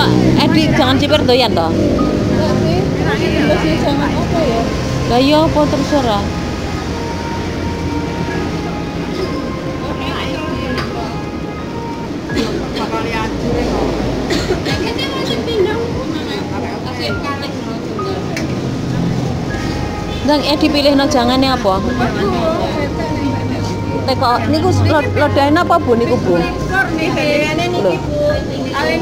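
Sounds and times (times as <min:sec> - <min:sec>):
low rumble: 0:13.2 - 0:15.2.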